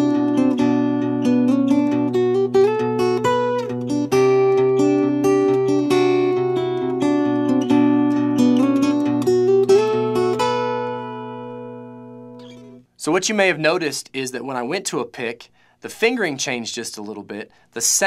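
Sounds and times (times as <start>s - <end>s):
fingerpicked acoustic guitar: 0.0s - 12.9s.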